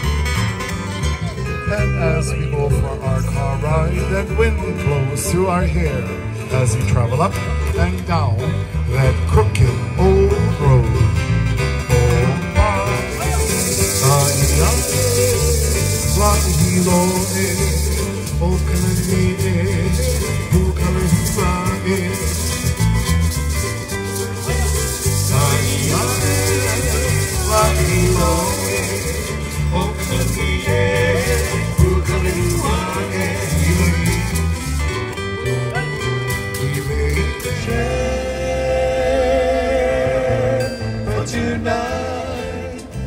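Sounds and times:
bass: 0.0 - 43.0
ukulele: 0.0 - 43.0
person singing: 11.8 - 23.4, 24.0 - 34.8, 35.5 - 43.0
gourd rattles shaken: 12.9 - 35.0.

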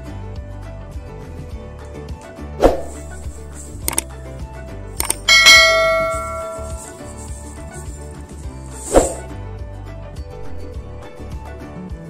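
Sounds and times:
mouse clicks: 2.8 - 4.1, 5.0 - 5.3
bell ding ringing: 5.0 - 7.3.

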